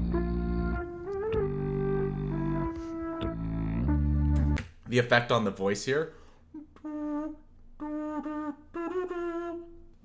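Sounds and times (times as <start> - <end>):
quiet bass line: 0.0 - 4.8.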